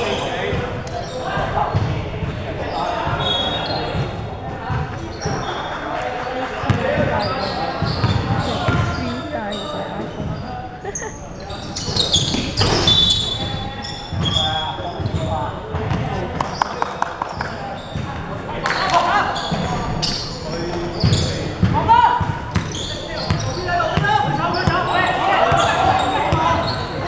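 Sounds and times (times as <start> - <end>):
players calling: 0.0 - 27.0.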